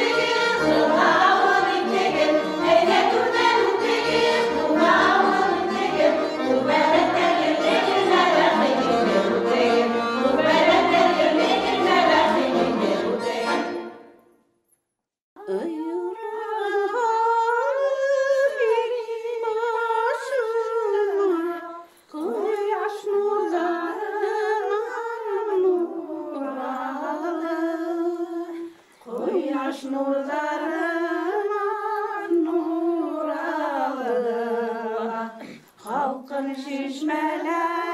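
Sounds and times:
women's folk choir singing: 0:00.0 - 0:14.1, 0:22.2 - 0:37.9.

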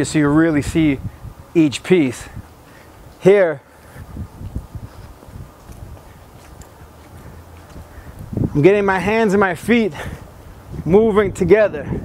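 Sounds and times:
footsteps on concrete: 0:02.6 - 0:10.9.

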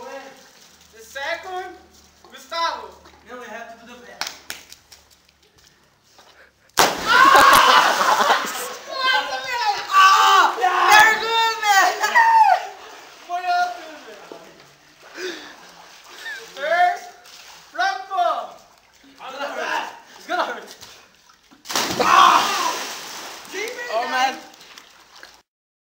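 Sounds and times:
body splashing into pool: 0:06.8 - 0:09.5, 0:21.6 - 0:25.4
excited shouting: 0:06.8 - 0:13.8, 0:21.9 - 0:22.8.

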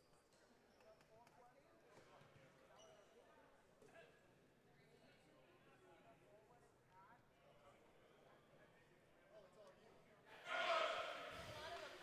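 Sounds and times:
distant people talking: 0:10.4 - 0:12.0.

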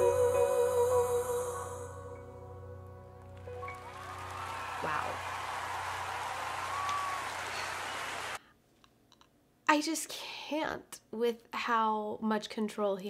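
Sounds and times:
audience applauding and cheering: 0:03.1 - 0:08.4.

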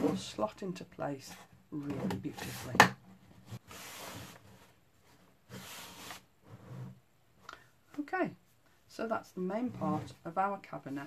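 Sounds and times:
wooden panels rubbing and sliding: 0:01.2 - 0:07.0.

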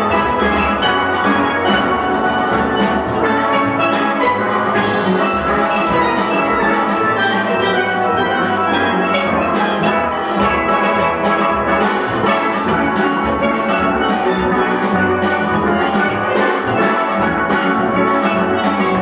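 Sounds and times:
drum kit: 0:00.0 - 0:19.0
steel pans playing quick notes: 0:00.0 - 0:19.0.

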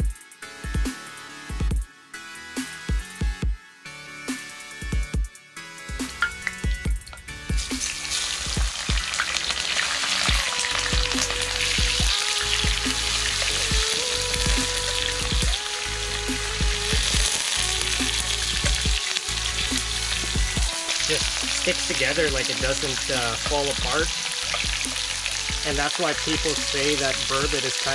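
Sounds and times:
fish sizzling in hot oil: 0:07.3 - 0:27.9.

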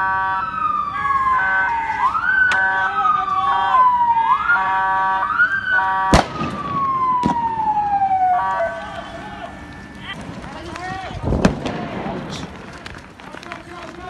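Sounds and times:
steady horn-like tone: 0:00.0 - 0:03.9, 0:04.5 - 0:06.3, 0:08.2 - 0:10.1
police siren wailing: 0:00.0 - 0:10.6
gunshots: 0:06.1 - 0:13.0.

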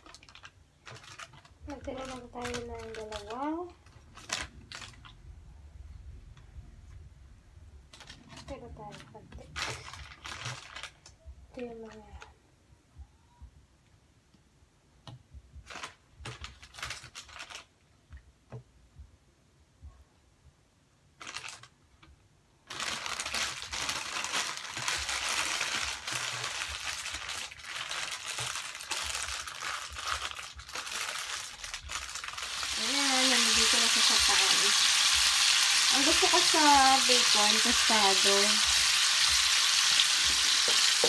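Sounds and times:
plastic packaging crinkling: 0:00.0 - 0:05.2, 0:07.9 - 0:12.3, 0:15.6 - 0:17.8, 0:21.2 - 0:41.0
bacon sizzling in a frying pan: 0:32.2 - 0:41.0.

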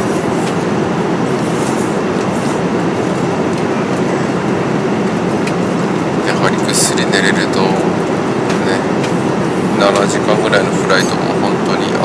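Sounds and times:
jet cabin engine drone: 0:00.0 - 0:12.0.

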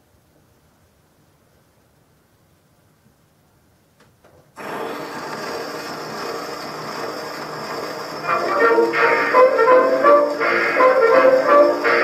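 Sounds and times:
record surface hiss and rumble: 0:00.0 - 0:12.0
jazz band brass: 0:08.3 - 0:12.0.

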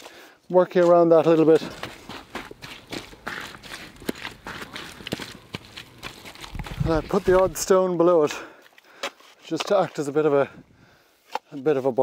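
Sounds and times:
boots stamping on wet clay: 0:00.6 - 0:08.4.

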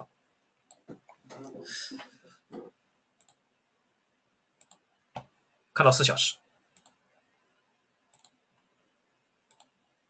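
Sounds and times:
computer mouse clicks: 0:03.2 - 0:03.4, 0:04.6 - 0:05.3, 0:06.7 - 0:07.0, 0:08.1 - 0:08.4, 0:09.5 - 0:09.8.

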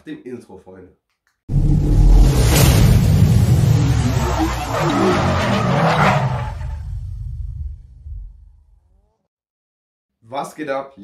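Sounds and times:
sweeping swishes: 0:01.5 - 0:05.4
deep low rumble: 0:01.5 - 0:05.6, 0:06.3 - 0:08.6
rumbling whoosh: 0:01.5 - 0:08.5.

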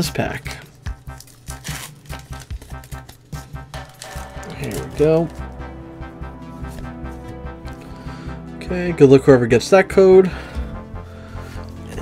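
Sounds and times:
background music: 0:00.0 - 0:12.0
foil wrapper crinkling and tearing: 0:00.4 - 0:05.5.

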